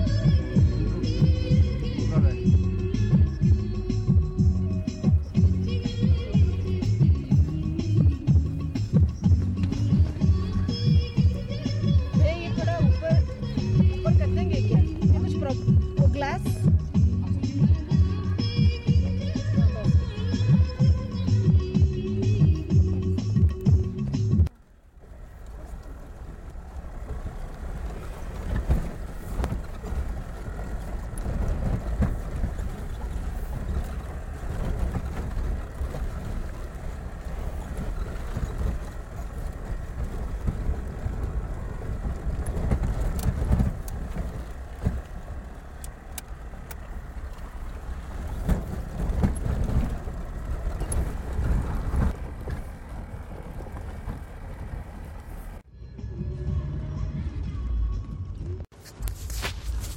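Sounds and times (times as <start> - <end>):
car jolting over bumps: 0.0 - 55.7
car engine and tyres rumbling: 0.0 - 59.9.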